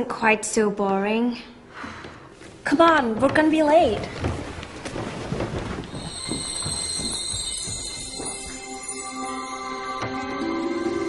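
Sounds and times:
high steady ringing shimmer tone: 0:05.9 - 0:11.0.

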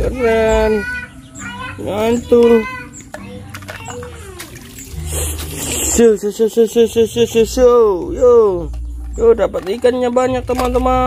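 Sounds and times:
water splashing in a pond: 0:04.3 - 0:06.0.

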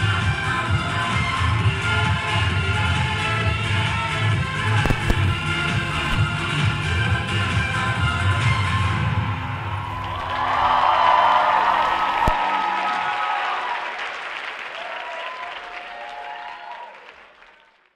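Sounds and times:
dance music with a beat: 0:00.0 - 0:09.6
audience applause and cheering: 0:09.6 - 0:17.9.

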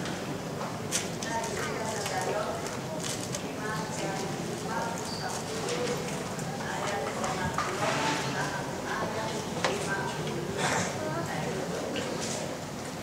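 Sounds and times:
woman speaking into a microphone: 0:01.2 - 0:12.4.

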